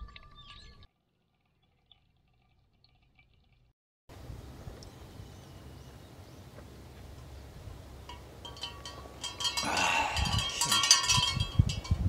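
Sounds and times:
wind rumbling on microphone: 4.1s - 12.0s
metallic chime ringing: 8.1s - 12.0s.

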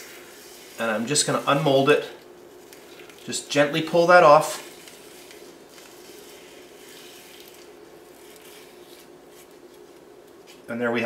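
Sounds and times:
steady low hum: 0.0s - 11.0s
plastic strip peeled from frosting: 0.4s - 3.4s, 4.4s - 10.7s.

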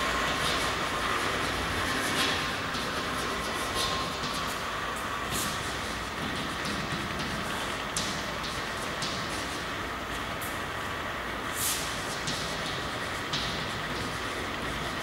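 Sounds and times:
chalk scratching on blackboard: 0.3s - 4.6s.

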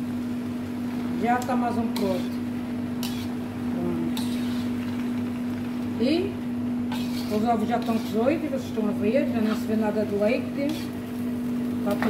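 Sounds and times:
kitchen hum: 0.0s - 12.0s
tongs tossing noodles in wok: 1.4s - 3.5s, 4.1s - 5.5s, 6.8s - 11.3s.

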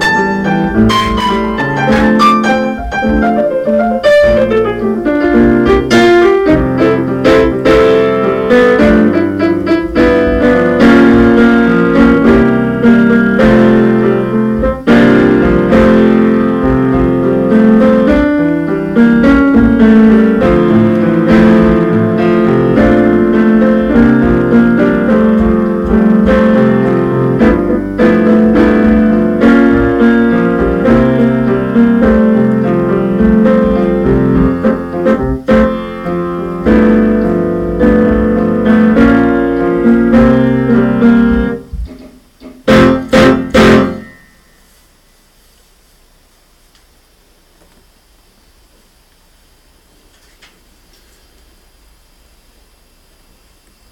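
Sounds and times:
piano playing notes and chords: 0.0s - 45.1s
loud struck piano chords: 0.0s - 45.2s.

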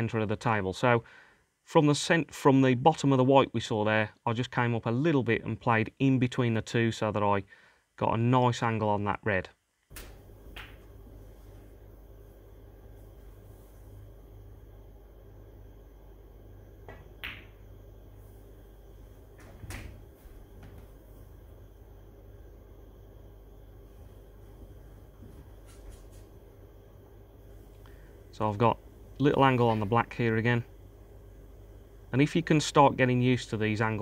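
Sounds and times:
faint steady hum: 0.0s - 34.0s
snooker balls clicking: 9.9s - 11.1s, 16.8s - 17.6s.

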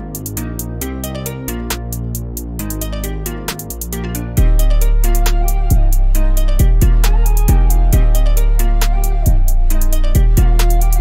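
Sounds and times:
heavy bass: 0.0s - 11.0s
trap instrumental beat: 0.0s - 11.0s.

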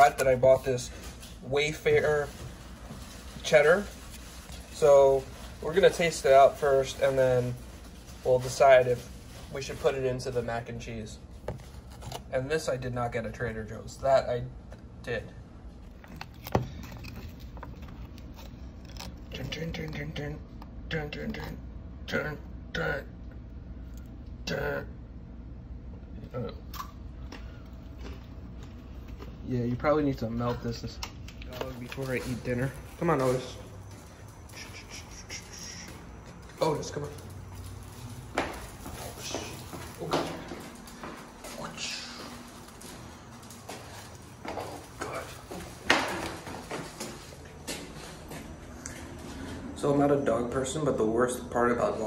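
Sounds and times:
light crinkling: 0.0s - 12.3s, 15.6s - 20.6s, 26.8s - 49.5s
footsteps going down stairs: 35.7s - 49.6s.

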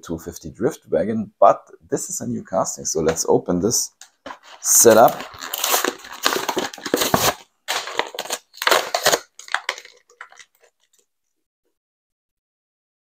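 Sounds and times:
packaging crunching and crackling: 4.3s - 11.0s.

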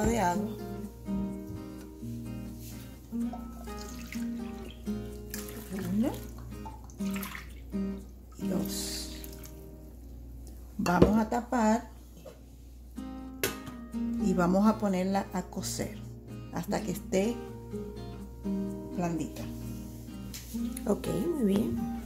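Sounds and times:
water pouring into saucepan: 3.6s - 7.9s
background music: 13.2s - 22.0s.

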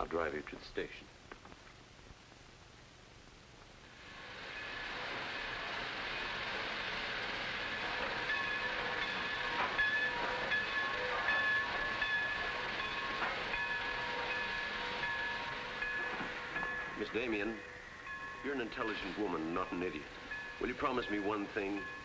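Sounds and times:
train rushing noise: 3.8s - 22.0s
metal clanks: 7.8s - 17.0s.

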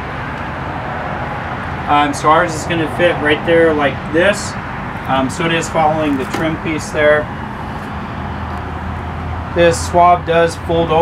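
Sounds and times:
outdoor background noise: 0.0s - 11.0s
man speaking: 1.9s - 7.3s, 9.6s - 11.0s.

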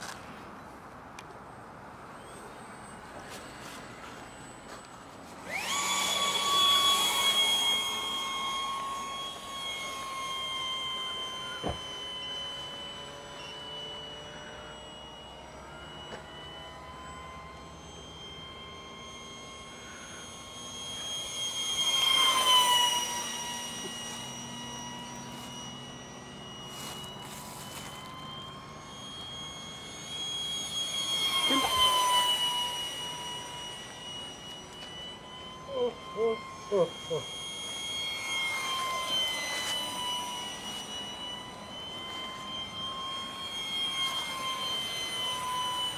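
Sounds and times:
model jet whine passing: 0.0s - 45.9s.

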